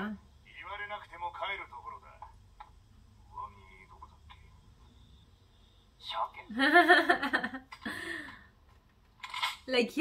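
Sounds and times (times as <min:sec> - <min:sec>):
woman's voice: 0:00.0 - 0:00.2, 0:09.6 - 0:10.0.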